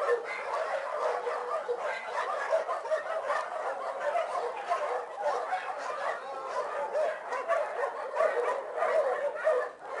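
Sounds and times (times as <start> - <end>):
dogs barking and yipping: 0.0 - 10.0.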